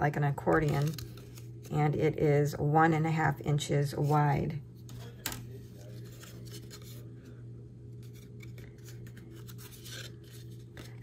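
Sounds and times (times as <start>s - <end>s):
paper rustling: 0.5s - 1.6s, 4.8s - 7.2s, 8.0s - 11.0s.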